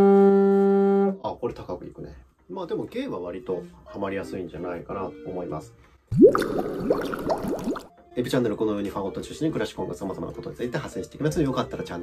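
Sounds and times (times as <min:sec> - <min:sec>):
cartoon bubbly bloops: 0:06.1 - 0:07.9.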